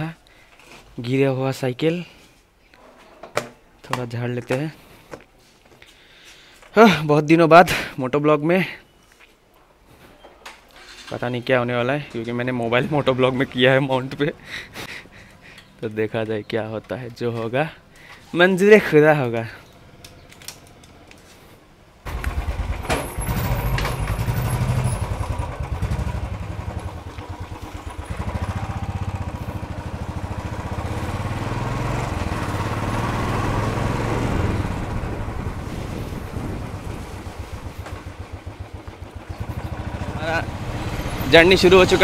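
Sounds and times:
motorcycle engine starting and running: 22.1 - 42.0.

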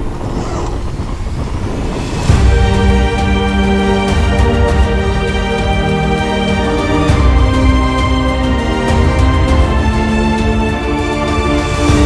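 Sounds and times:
wind buffeting microphone: 0.0 - 6.2.

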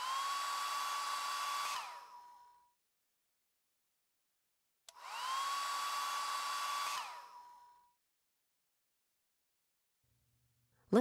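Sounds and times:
hair dryer motor whining: 0.0 - 2.7, 4.9 - 8.0
hair dryer switch click: 4.9 - 5.1.

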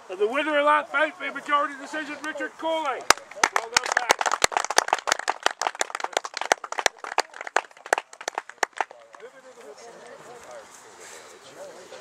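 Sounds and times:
faint distant voices: 0.0 - 12.0
spectators clapping: 2.8 - 9.3.

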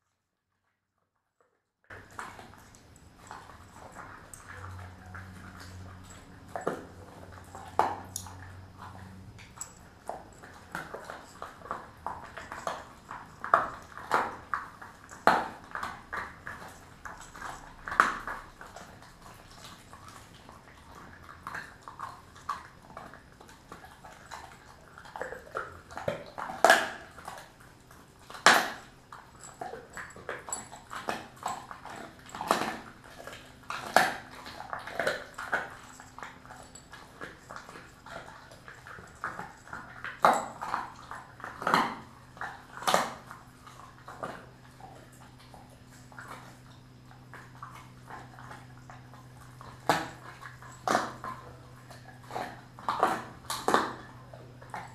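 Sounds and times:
dog chewing a bone: 1.9 - 54.9.

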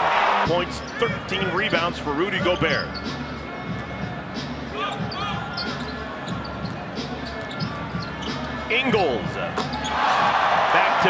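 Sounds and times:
sneakers squeaking: 0.8 - 8.8, 9.4 - 10.3.

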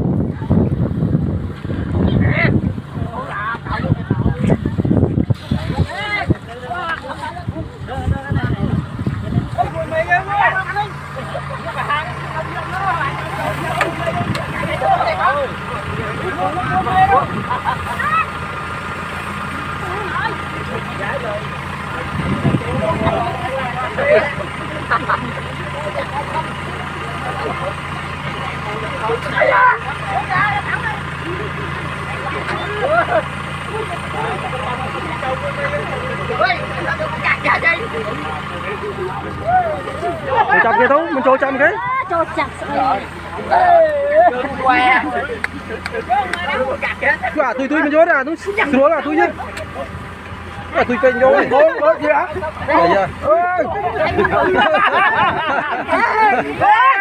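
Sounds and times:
combine harvester engine humming: 0.0 - 57.0
people talking and calling out: 0.0 - 57.0.

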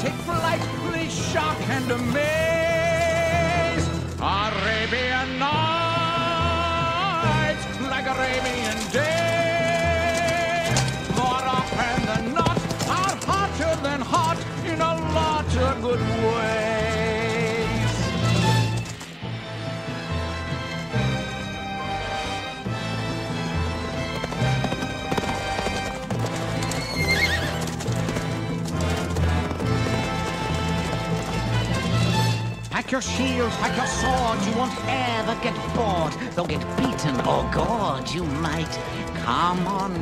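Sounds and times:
hoofbeats galloping across sand: 0.0 - 4.3, 6.5 - 19.3, 20.0 - 40.0
orchestral film music: 0.0 - 40.0
horse whinnying: 24.0 - 32.4, 33.4 - 34.9.

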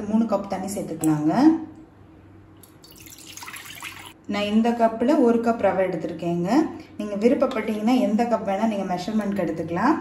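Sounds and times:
woman's voice: 0.0 - 1.7, 4.3 - 10.0.

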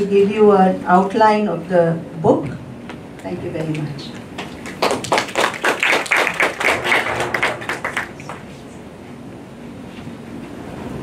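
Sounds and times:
audience applauding: 4.4 - 8.8.

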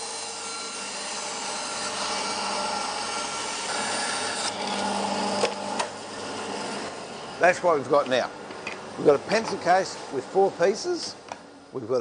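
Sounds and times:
bandsaw cutting wood: 0.0 - 7.0.

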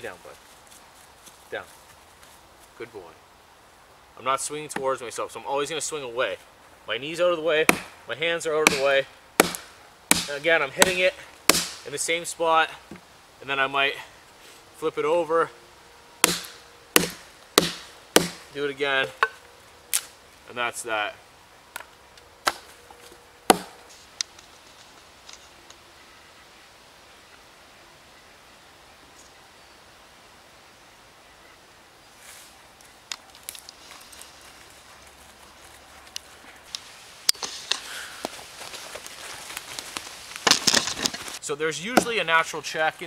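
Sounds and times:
rustling in dry leaves: 0.0 - 4.2, 32.0 - 41.4
wood pieces knocking: 40.4 - 41.3.

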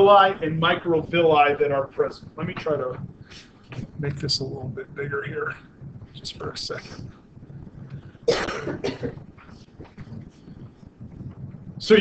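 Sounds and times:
person coughing: 8.3 - 9.2.

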